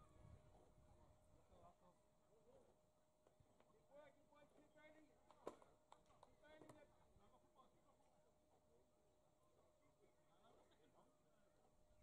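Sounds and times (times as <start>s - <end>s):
faint distant voices: 0.0s - 12.0s.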